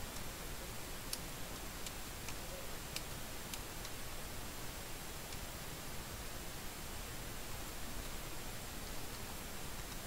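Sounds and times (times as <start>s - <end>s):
audio line hiss: 0.0s - 10.0s
faint sharp clicks: 1.1s - 4.0s.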